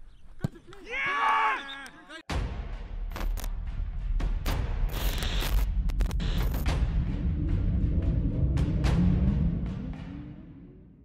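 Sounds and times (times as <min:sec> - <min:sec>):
player shouting: 0:00.8 - 0:02.3.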